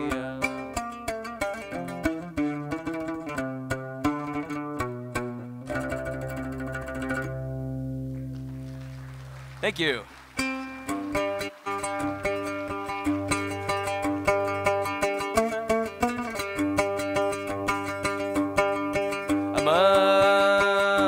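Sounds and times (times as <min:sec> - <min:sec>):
oud playing: 0:00.0 - 0:21.0.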